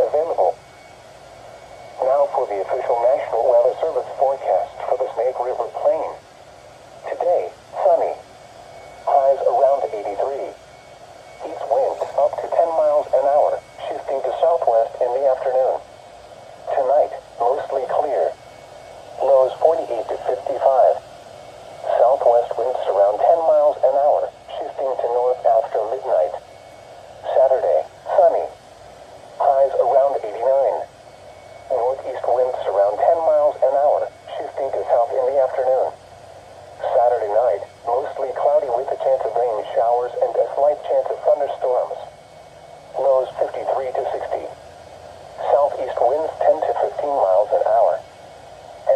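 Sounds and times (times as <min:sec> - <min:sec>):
automated voice through small speaker: 0:00.0 - 0:00.6, 0:02.0 - 0:06.2, 0:07.0 - 0:08.2, 0:09.1 - 0:10.6, 0:11.4 - 0:15.9, 0:16.6 - 0:18.4, 0:19.2 - 0:21.0, 0:21.8 - 0:26.4, 0:27.2 - 0:28.6, 0:29.4 - 0:30.9, 0:31.7 - 0:36.0, 0:36.8 - 0:42.1, 0:43.0 - 0:44.6, 0:45.4 - 0:48.1.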